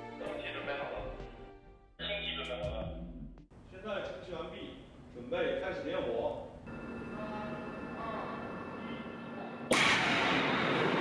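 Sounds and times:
steady hum: 3.5 - 11.0.

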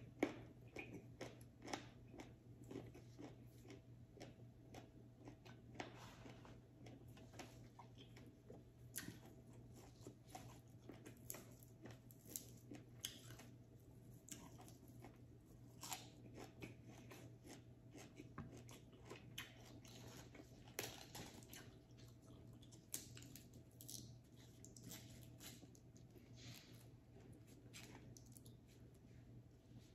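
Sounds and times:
person chewing and crunching food: 0.0 - 29.9.

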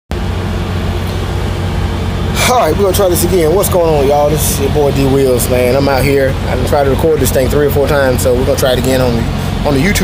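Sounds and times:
diesel engine running: 0.1 - 10.0.

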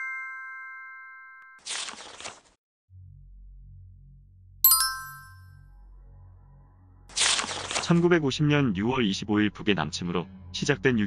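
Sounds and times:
bell-like chime: 0.0 - 1.6, 4.7 - 5.5.

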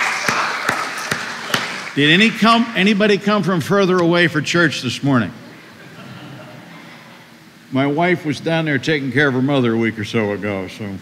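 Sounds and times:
faint scattered clapping: 0.0 - 2.0
sharp hand claps: 0.0 - 2.0.

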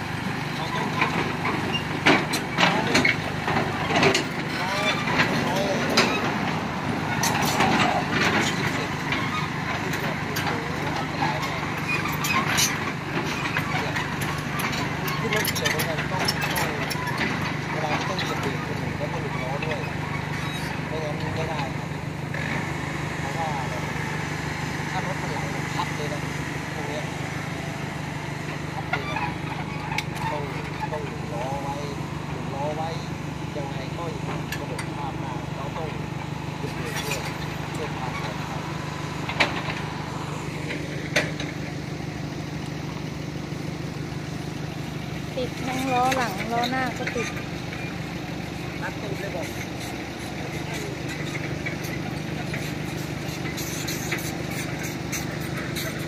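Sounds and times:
diesel engine humming: 0.0 - 56.0.

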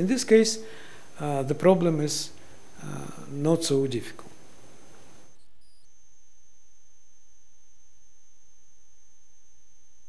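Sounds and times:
low electrical hum: 0.0 - 10.0
faint high steady tones: 4.5 - 10.0.

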